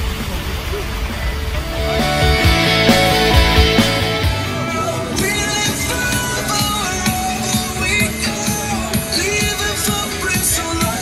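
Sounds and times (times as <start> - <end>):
street rumble and hiss: 0.0 - 11.0
music with held notes: 1.6 - 11.0.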